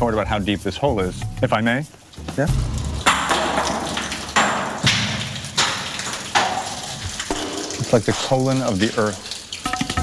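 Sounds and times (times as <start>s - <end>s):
rock crashing down a shaft: 2.9s - 7.8s.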